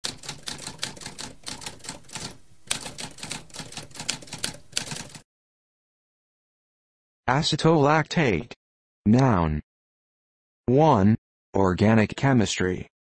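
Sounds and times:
typewriter keys clacking: 0:00.0 - 0:05.2.

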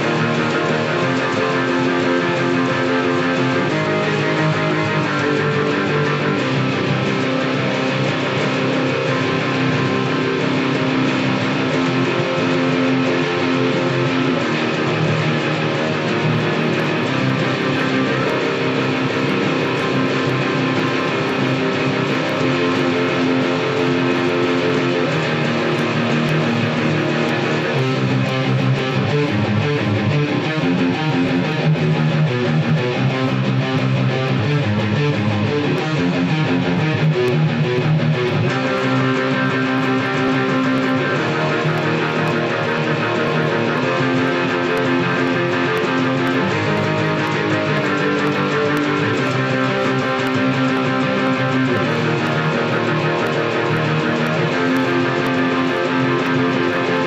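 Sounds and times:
distorted electric guitar riffs: 0:00.0 - 0:57.0.

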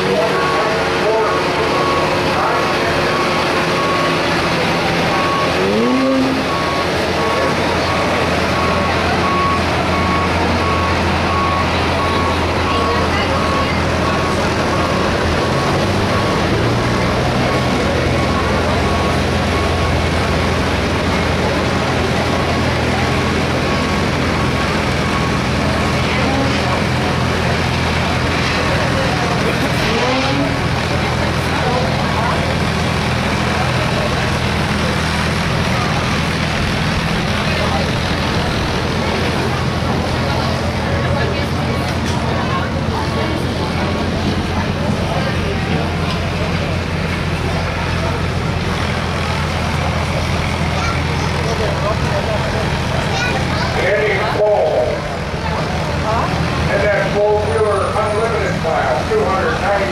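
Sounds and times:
reversing alarm beeping: 0:00.0 - 0:32.6
people talking: 0:00.0 - 0:59.9
truck engines idling: 0:00.0 - 0:59.9.

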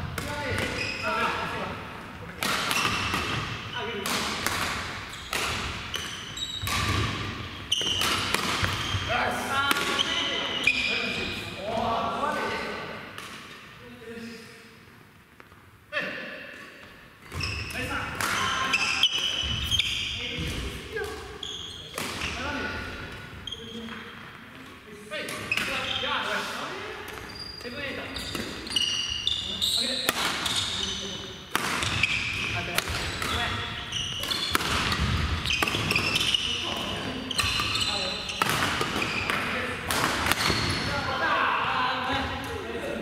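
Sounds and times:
players' voices: 0:00.1 - 0:13.1, 0:17.5 - 0:43.0
racket hitting shuttlecock: 0:02.3 - 0:09.0, 0:09.7 - 0:10.1, 0:21.9 - 0:22.2, 0:30.0 - 0:30.5, 0:31.5 - 0:33.6, 0:34.2 - 0:36.4, 0:38.4 - 0:40.8
shoes squeaking on wooden floor: 0:05.1 - 0:09.1, 0:21.4 - 0:22.6, 0:27.1 - 0:31.2, 0:31.8 - 0:39.6, 0:40.4 - 0:41.0.

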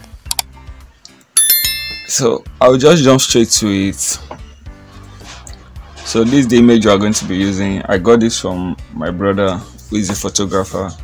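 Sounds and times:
loud bell ding: 0:01.4 - 0:02.6
faint background music: 0:02.1 - 0:11.0.

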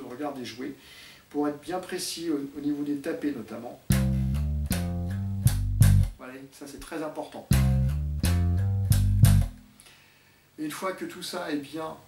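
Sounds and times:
slap bass guitar: 0:03.9 - 0:06.2, 0:07.5 - 0:09.7.

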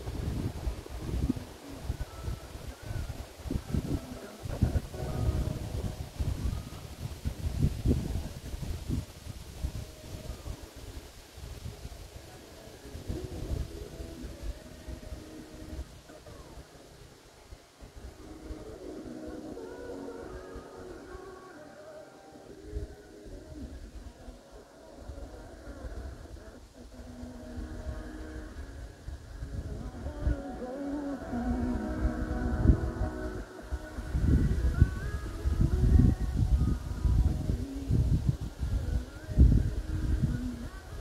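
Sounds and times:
wind gusting on microphone: 0:00.0 - 0:41.0.

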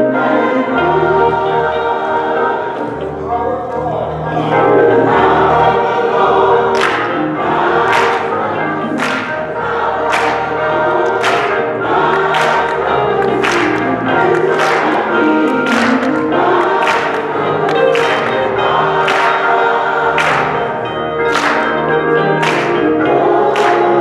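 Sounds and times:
choir singing gospel music: 0:00.0 - 0:24.0
electric guitar: 0:00.0 - 0:24.0.

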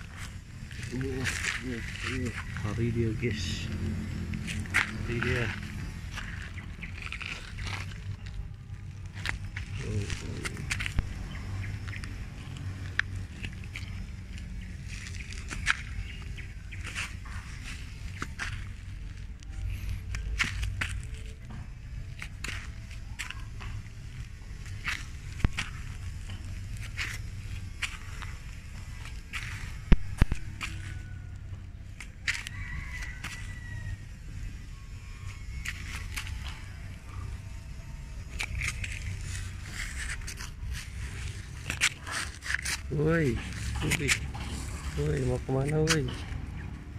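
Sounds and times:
footsteps on dry leaves: 0:00.0 - 0:46.4
clicks and scrapes: 0:38.3 - 0:45.0.

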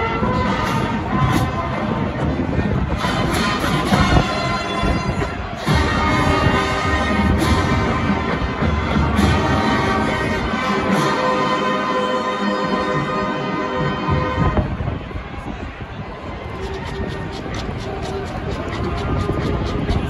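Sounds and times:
marching band playing chords: 0:00.0 - 0:15.0.

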